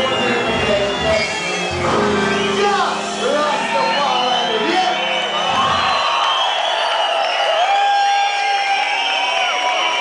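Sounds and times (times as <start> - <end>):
crowd cheering and calling out: 0.0 - 10.0.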